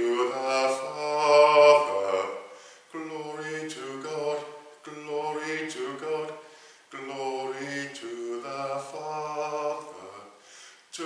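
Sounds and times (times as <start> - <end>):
man singing a slow chant: 0.0 - 11.0.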